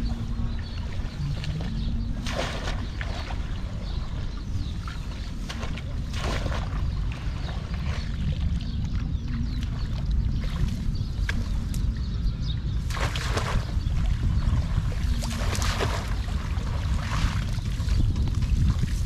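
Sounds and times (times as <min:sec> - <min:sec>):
muddy water splashing: 0:00.0 - 0:19.0
wind buffeting microphone: 0:00.0 - 0:19.0.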